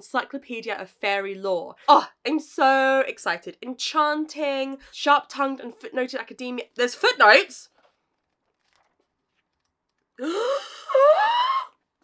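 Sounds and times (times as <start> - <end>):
woman's excited vocal cries: 10.4 - 11.7.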